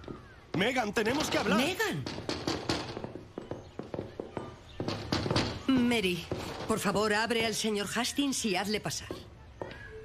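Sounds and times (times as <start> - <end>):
fist pounding on door: 0.2 - 7.1.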